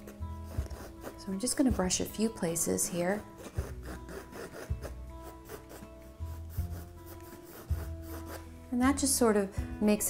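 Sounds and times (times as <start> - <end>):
paintbrush brushing on canvas: 3.4 - 8.5.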